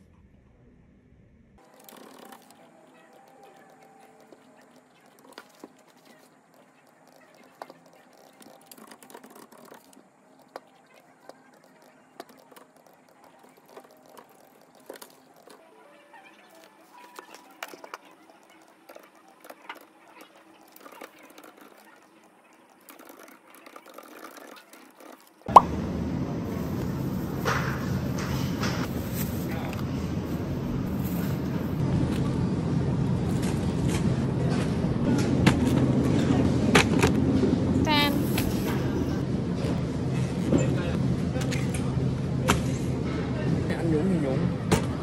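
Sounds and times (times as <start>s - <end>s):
steady low hum: 25.5s - 43.7s.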